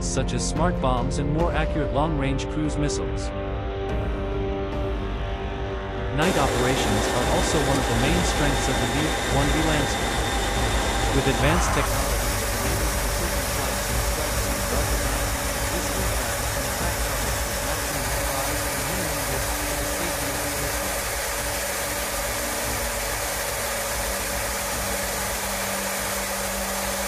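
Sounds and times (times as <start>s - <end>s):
jet engine drone in cabin: 6.2s - 27.0s.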